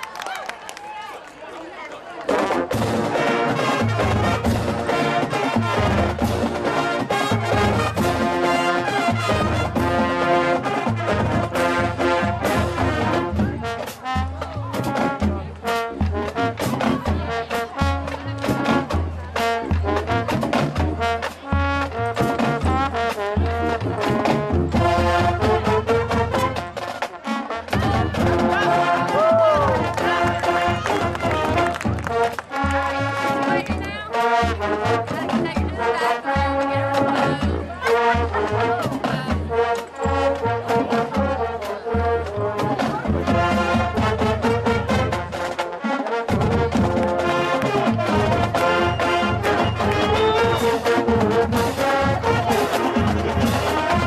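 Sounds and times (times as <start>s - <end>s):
marching band brass playing: 1.9s - 54.0s
drumline steady beat: 2.3s - 54.0s.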